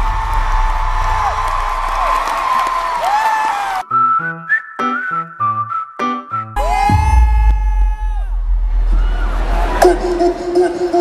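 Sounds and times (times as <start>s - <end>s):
concert crowd noise: 0.0s - 3.9s, 6.6s - 11.0s
sliding whistle-like pitches: 3.8s - 7.9s.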